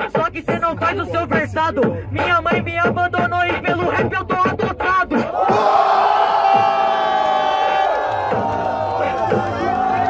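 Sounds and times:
crowd shouting: 0:05.2 - 0:10.0.

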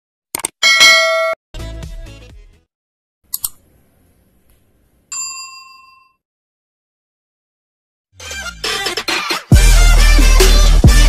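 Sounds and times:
bright bell ding: 0:00.6 - 0:01.4, 0:05.1 - 0:06.2.

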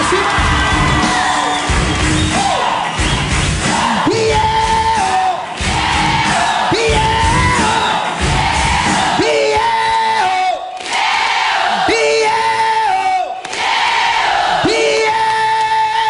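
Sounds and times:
band with electric guitar: 0:00.0 - 0:09.0
audience yelling and cheering: 0:00.0 - 0:16.0
man singing: 0:03.7 - 0:05.4.

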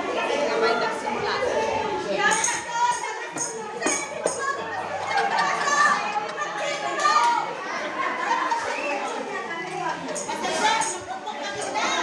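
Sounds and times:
children's voices: 0:00.0 - 0:12.0
crowd voices echoing in hall: 0:00.0 - 0:12.0.

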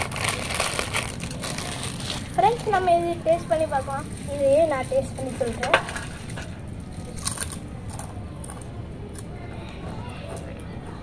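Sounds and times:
potato chips crunching: 0:00.0 - 0:02.8, 0:06.1 - 0:09.3.

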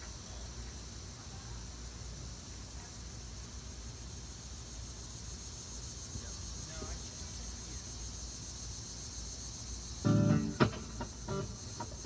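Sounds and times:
high insect-like buzz: 0:04.3 - 0:12.0
electric guitar: 0:10.0 - 0:12.0.

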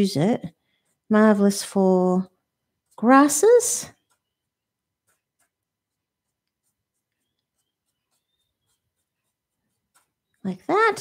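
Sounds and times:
brush bristles scratching paper: 0:00.2 - 0:11.0.

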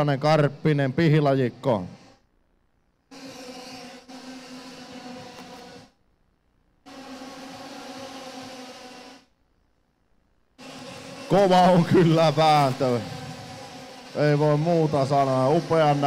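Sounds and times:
racing kart engines high drone: 0:10.6 - 0:16.0.

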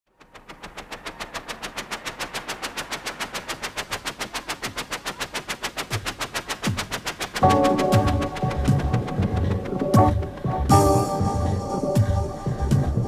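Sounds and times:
fast electronic hi-hat ticks: 0:00.1 - 0:13.0.

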